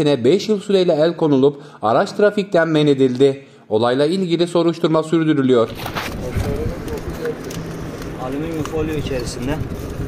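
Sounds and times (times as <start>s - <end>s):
indistinct voices talking: 5.7s - 9.8s.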